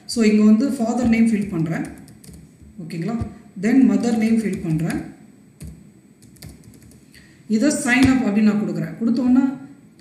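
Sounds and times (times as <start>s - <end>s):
faint keyboard keystrokes: 5.6s - 7.0s.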